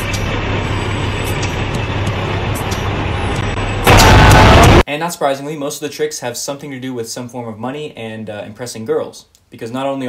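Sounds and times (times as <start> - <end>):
city street traffic: 0.0 - 4.8.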